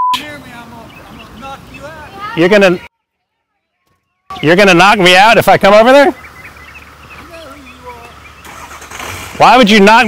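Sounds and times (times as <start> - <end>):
bird chirps: 0.1 - 5.0, 5.7 - 8.9.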